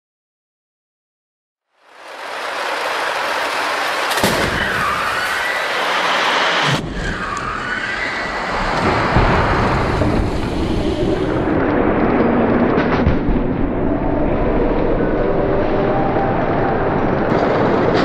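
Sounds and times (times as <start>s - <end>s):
rumbling rush of noise: 1.8s - 18.0s
sharp crack: 2.1s - 13.9s.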